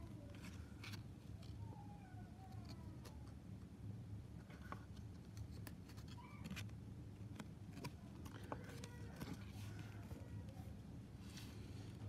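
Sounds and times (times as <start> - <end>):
low room hum: 0.0 - 12.0
cards clicking and rustling: 4.5 - 10.2.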